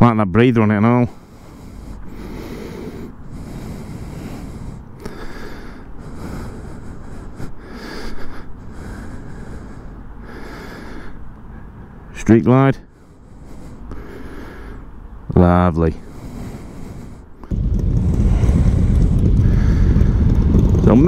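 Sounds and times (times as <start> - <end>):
wind buffeting microphone: 16.2 - 21.0.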